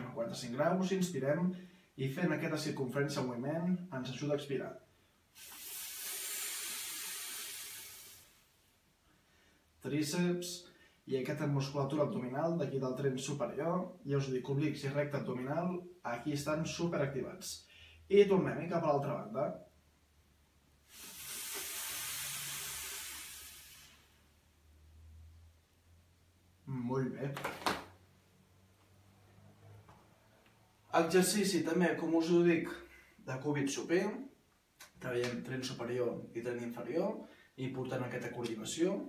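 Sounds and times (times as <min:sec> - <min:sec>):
man exhaling through mouth: 0:05.3 - 0:08.6, 0:20.8 - 0:24.4.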